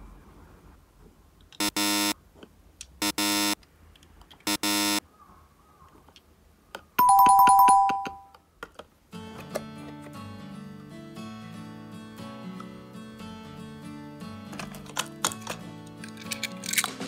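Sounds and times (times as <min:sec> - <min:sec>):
electronic buzzer tones: 0:01.6 - 0:02.2, 0:03.0 - 0:03.6, 0:04.5 - 0:05.0
two-note chime: 0:07.0 - 0:08.3
toy cars clicking: 0:14.6 - 0:17.0.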